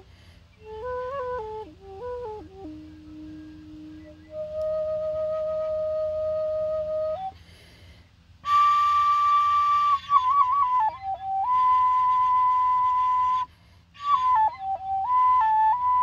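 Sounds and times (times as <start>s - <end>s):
bamboo flute long notes: 0.0s - 16.0s.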